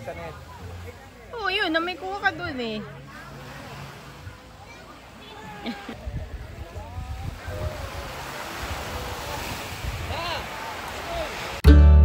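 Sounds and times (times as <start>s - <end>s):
small sea waves washing: 0.0s - 11.6s
wind rumbling on microphone: 6.0s - 11.6s.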